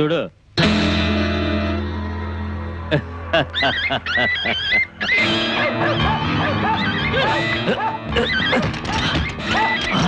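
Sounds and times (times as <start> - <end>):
background film music: 0.6 - 10.0
dogs yelping and whining: 3.6 - 10.0.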